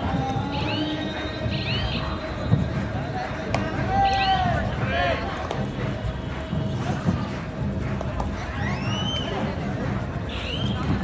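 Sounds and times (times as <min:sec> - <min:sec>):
music: 0:00.0 - 0:11.0
noisy background: 0:00.0 - 0:11.0.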